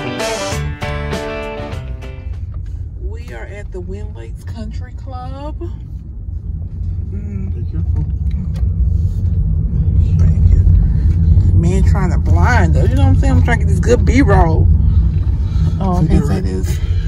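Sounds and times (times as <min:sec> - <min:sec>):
road and engine noise in car: 0:00.0 - 0:17.0.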